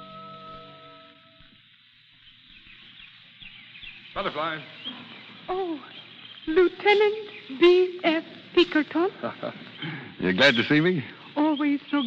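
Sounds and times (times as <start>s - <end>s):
faint bird chirps: 0.0s - 12.0s
recording hiss: 0.0s - 12.0s.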